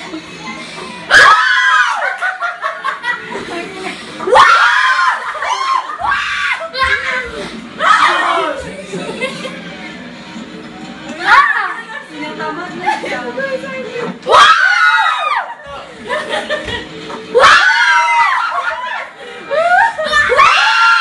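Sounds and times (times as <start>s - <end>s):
arena crowd on television: 0.0s - 21.0s
television broadcast music: 0.0s - 21.0s
people screaming and yelling: 0.7s - 2.7s, 4.2s - 8.7s, 11.2s - 11.8s, 14.2s - 15.7s, 17.3s - 21.0s.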